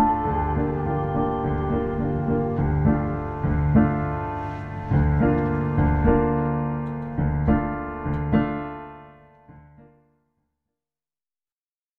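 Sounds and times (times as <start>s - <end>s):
piano chords: 0.0s - 10.1s.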